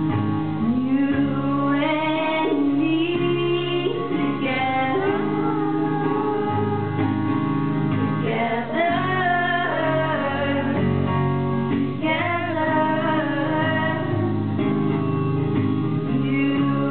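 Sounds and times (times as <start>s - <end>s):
acoustic guitar: 0.0s - 16.9s
woman singing: 0.6s - 11.2s, 12.0s - 14.6s, 16.0s - 16.9s.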